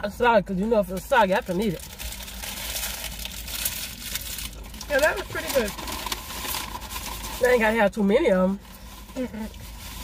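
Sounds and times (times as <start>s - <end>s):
crispy taco crunching: 0.6s - 10.0s
paper wrapper crinkling: 0.8s - 10.0s.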